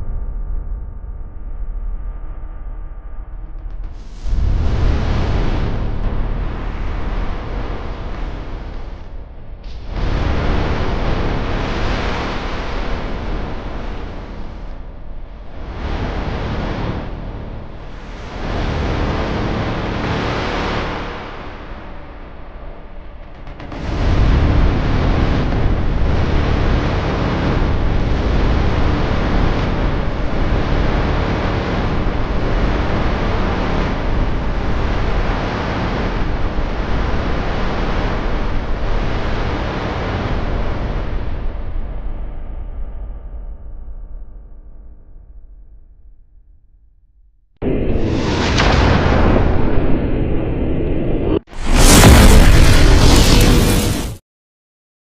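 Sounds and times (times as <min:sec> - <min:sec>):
loud rushing noise: 0:03.8 - 0:41.3, 0:47.6 - 0:54.2.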